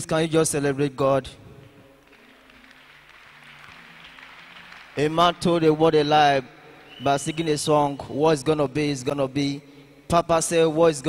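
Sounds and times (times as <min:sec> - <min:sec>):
congregation clapping: 0:01.9 - 0:07.8.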